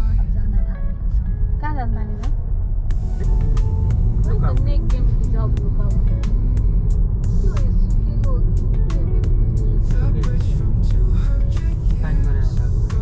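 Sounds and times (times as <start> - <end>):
car road and engine rumble: 0.0 - 13.0
song with singing and beat: 9.9 - 13.0.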